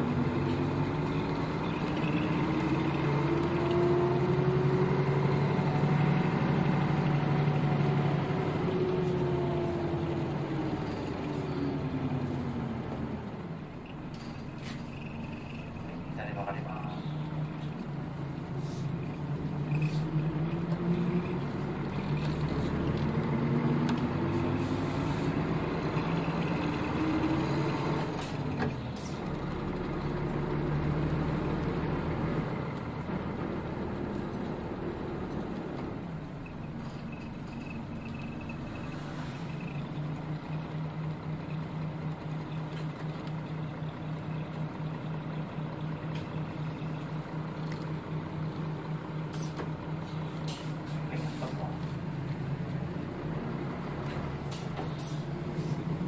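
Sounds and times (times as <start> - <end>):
bus diesel engine accelerating: 0.0 - 56.0.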